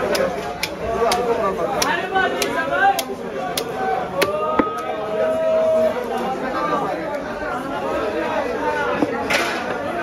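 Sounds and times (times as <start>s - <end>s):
market chatter: 0.0s - 10.0s.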